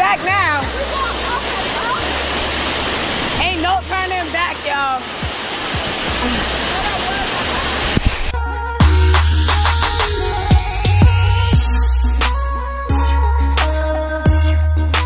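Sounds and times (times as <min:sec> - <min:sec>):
waterfall rushing over rocks: 0:00.0 - 0:10.7.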